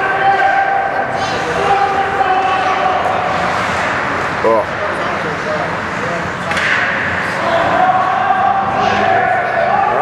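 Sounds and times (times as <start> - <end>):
skates and spectators' voices: 0.0 - 10.0
hockey stick cracking puck: 6.5 - 7.1.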